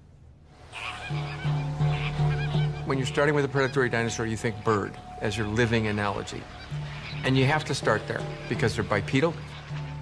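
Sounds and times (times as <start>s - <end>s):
birds honking and calling: 0.6s - 10.0s
music: 0.6s - 10.0s.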